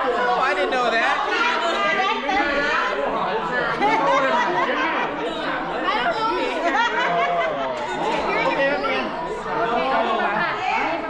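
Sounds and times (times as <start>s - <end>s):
group of people chattering: 0.0s - 11.0s.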